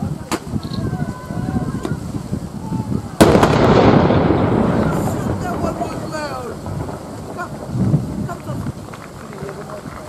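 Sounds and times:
field gun firing: 3.2 - 5.8.

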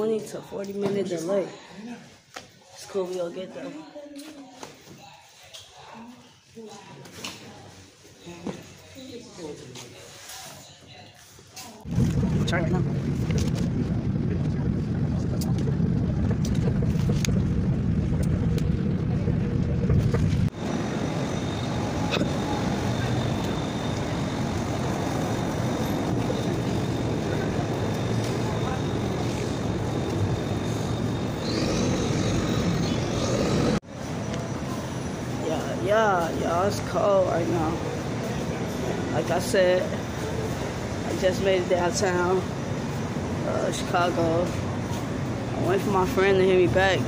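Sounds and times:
train rumble inside passenger car: 12.0 - 31.5
city street traffic noise: 14.8 - 47.0.

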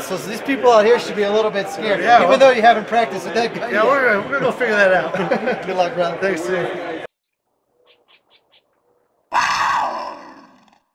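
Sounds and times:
loud animal roar: 9.3 - 10.9.

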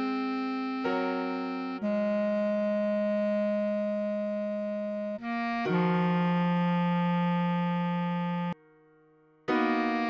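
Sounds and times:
bass clarinet long tone: 0.0 - 8.6, 9.7 - 10.0
sustained keyboard chord: 0.0 - 8.9, 9.5 - 10.0.

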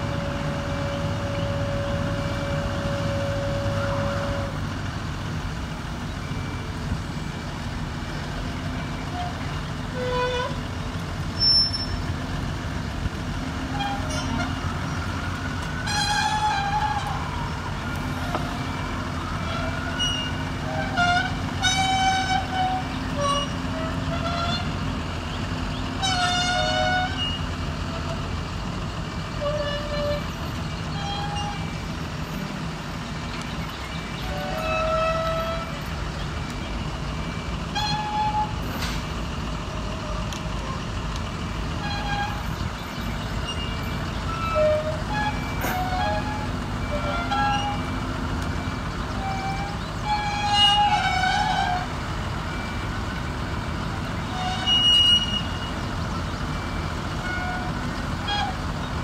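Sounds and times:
diesel engine running: 0.0 - 59.0.

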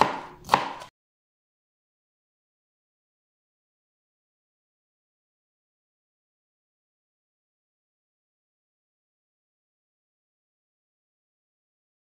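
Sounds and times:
knife chopping on cutting board: 0.0 - 0.9.

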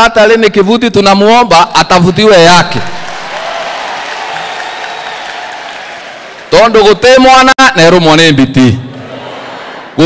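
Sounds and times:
audience applauding: 2.8 - 6.7.

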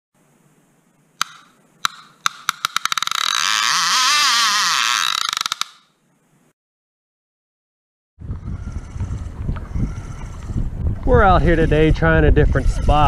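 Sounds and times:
sharp clicks: 1.2 - 5.9.

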